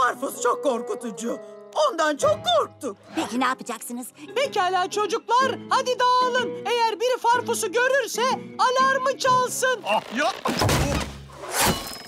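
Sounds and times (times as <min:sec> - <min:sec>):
cartoon clattering crash with thuds: 0:10.5 - 0:12.0.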